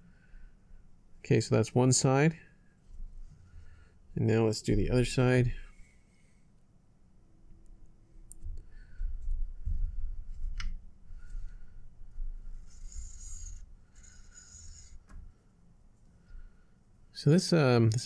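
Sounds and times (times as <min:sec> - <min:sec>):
cord rubbing and rustling: 0:08.4 - 0:16.1.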